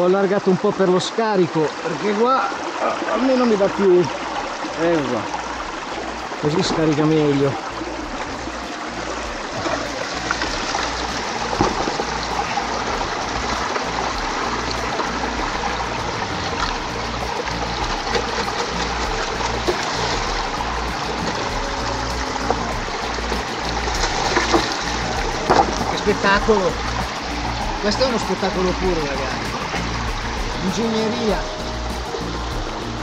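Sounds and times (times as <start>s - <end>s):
mountain stream rushing: 0.0s - 33.0s
water running through metal sluice: 0.0s - 33.0s.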